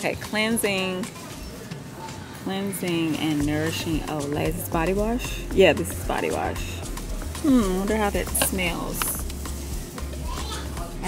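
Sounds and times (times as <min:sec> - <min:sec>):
chatter of shoppers: 0:00.0 - 0:11.0
children's voices: 0:10.2 - 0:10.8.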